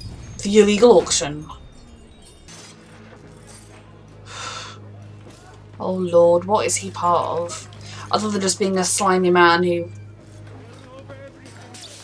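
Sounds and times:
low steady hum: 0.0 - 11.4
sharp gasp: 4.3 - 4.8.

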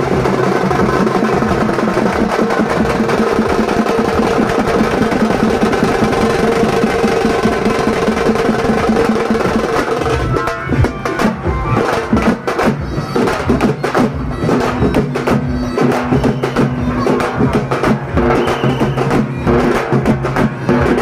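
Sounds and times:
loud fast drumming: 0.0 - 21.0.

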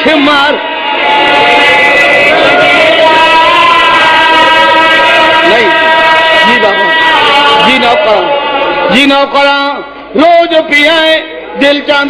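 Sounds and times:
man chanting through loudspeakers: 5.0 - 12.0.

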